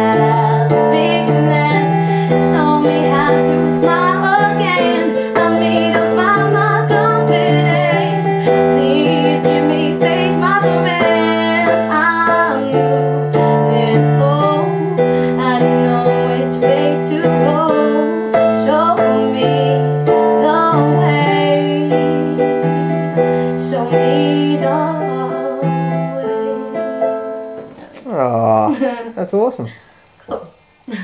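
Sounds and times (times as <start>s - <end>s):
woman singing with vibrato: 0.0s - 28.0s
held keyboard chords: 0.0s - 28.7s.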